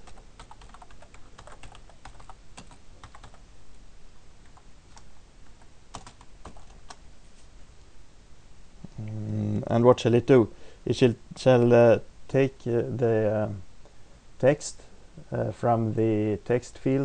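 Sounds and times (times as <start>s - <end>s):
computer keyboard typing: 0.0s - 3.4s, 5.9s - 7.0s.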